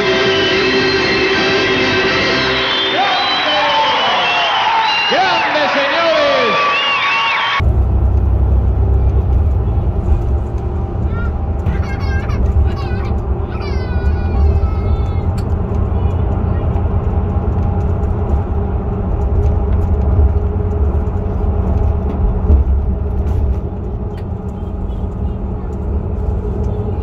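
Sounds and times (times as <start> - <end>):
coach engine and road rumble: 0.0 - 6.8, 7.4 - 27.0
high-pitched voice: 11.1 - 15.3.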